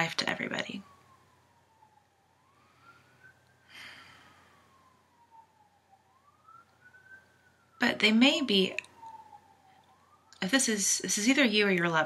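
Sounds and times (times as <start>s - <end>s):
faint siren wailing: 0.0s - 12.0s.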